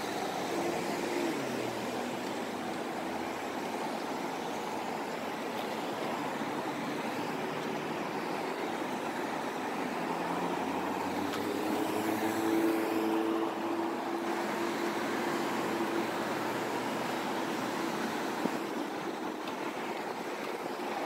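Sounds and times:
cars passing on city street: 0.0s - 21.0s
passing vehicle hum: 0.0s - 21.0s.

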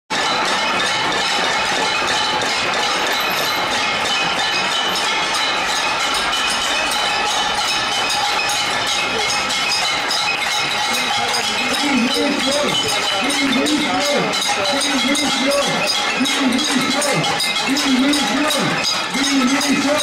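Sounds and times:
crowd banging pots and pans: 0.1s - 20.0s.

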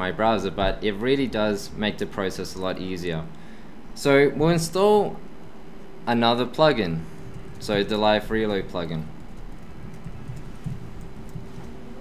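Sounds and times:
room hum: 0.0s - 12.0s
laptop keyboard typing: 7.2s - 12.0s.

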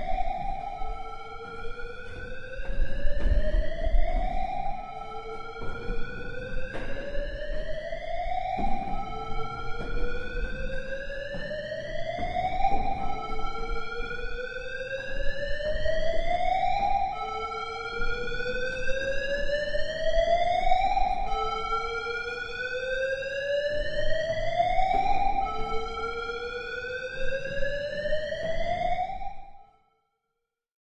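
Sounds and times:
rising siren tone: 0.0s - 29.5s.

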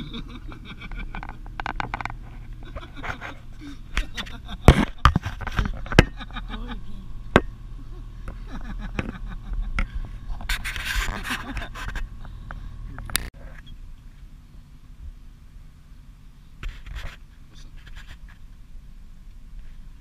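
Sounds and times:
vehicle engine idling: 0.0s - 20.0s.

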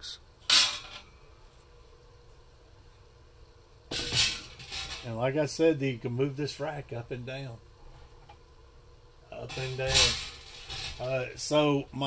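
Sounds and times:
air fryer oven hum: 0.0s - 12.0s.

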